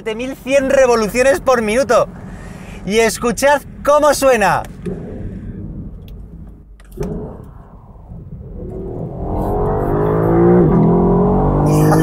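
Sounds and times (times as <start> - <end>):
car engine accelerating hard: 0.4 - 12.0.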